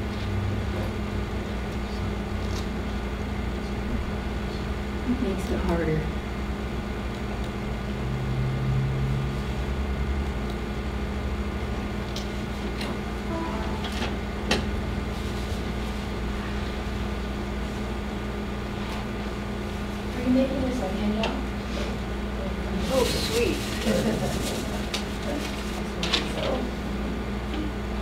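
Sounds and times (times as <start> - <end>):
low room hum: 0.0 - 28.0
paper being handled: 22.8 - 26.6.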